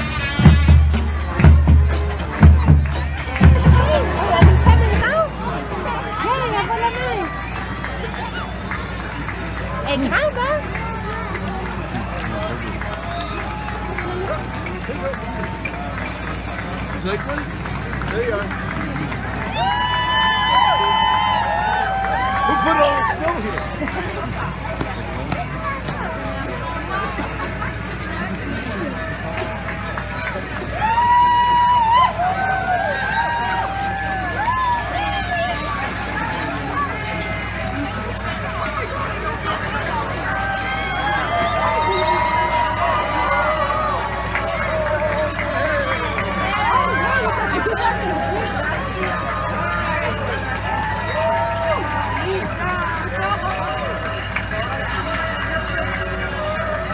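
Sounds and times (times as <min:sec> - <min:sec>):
crowd chatter: 0:00.0 - 0:56.9
voices calling out in long notes: 0:01.9 - 0:56.9.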